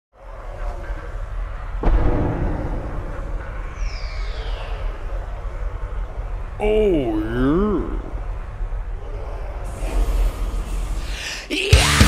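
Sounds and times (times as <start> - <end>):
heavy low rumble: 0.8 - 11.1
deep boom: 1.6 - 6.6
falling whistling sweep: 2.4 - 5.2.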